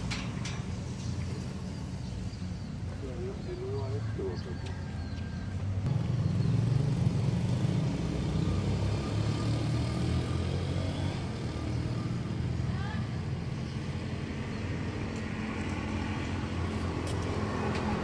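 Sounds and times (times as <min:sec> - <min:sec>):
vehicle engine rumbling: 0:00.0 - 0:18.0.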